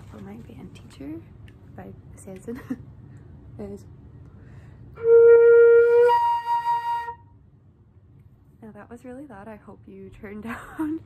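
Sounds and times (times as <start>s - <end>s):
flute overblown held note: 5.0s - 7.4s.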